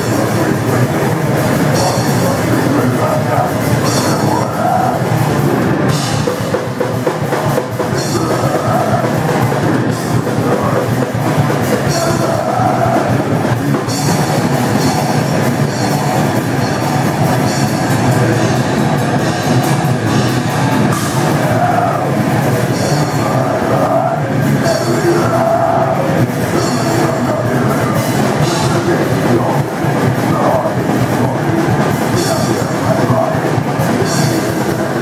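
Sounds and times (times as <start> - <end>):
distorted electric guitars riffing: 0.0 - 35.0
fast drumming and cymbals: 0.0 - 35.0.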